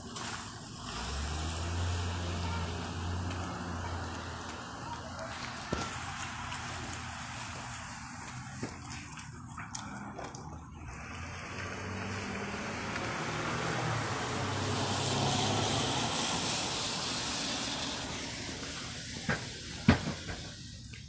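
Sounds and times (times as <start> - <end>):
passing vehicle rushing: 0.7 - 7.4, 11.0 - 20.8.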